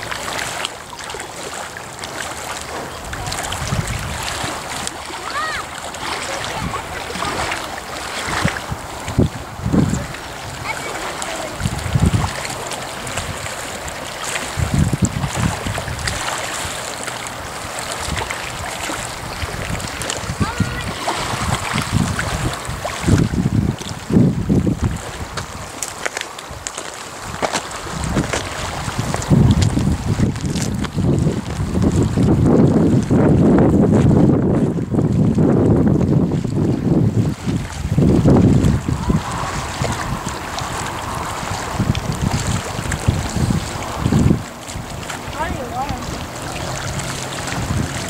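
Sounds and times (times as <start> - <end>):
wind buffeting microphone: 1.9 - 48.0.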